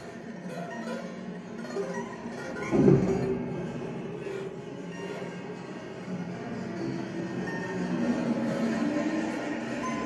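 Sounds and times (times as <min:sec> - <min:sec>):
electronically processed string sounds: 0:00.0 - 0:10.0.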